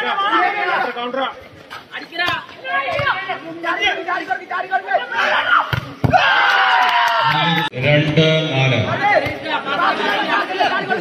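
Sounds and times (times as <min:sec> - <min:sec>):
people shouting and chattering: 0:00.0 - 0:11.0.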